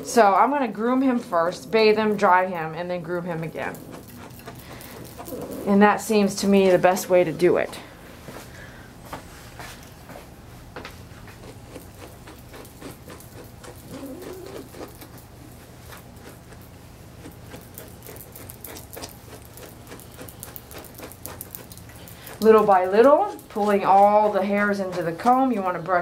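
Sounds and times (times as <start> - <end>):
steady low hum: 0.0 - 26.0
brush scratching through fur: 11.1 - 25.6.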